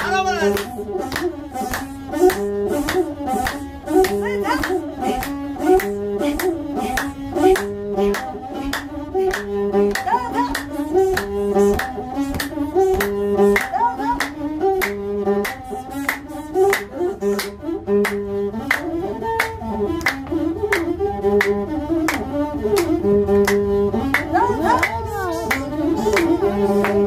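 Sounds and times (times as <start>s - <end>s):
bowed fiddle melody: 0.0s - 27.0s
steady hand claps: 0.0s - 27.0s.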